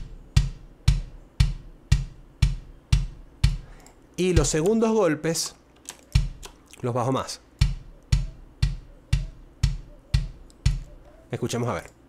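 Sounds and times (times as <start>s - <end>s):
kick drum thumps: 0.0s - 3.7s, 4.3s - 4.8s, 6.2s - 6.5s, 7.6s - 11.0s.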